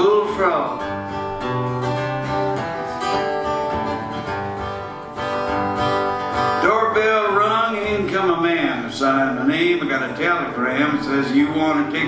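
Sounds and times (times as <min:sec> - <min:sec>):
acoustic guitars strumming chords: 0:00.0 - 0:12.0.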